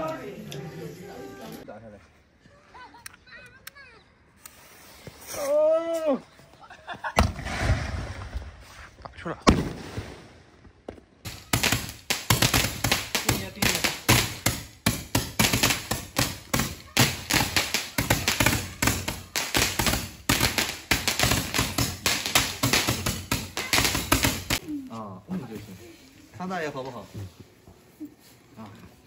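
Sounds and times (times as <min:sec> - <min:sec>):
firework tube popping rapidly: 0:11.3 - 0:24.6.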